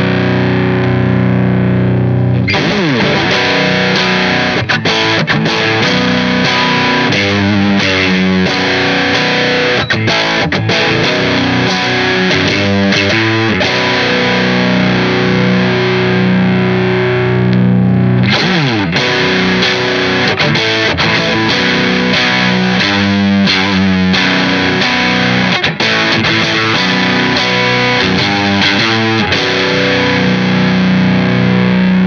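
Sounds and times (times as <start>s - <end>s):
distorted electric guitar chord: 0.0s - 32.0s.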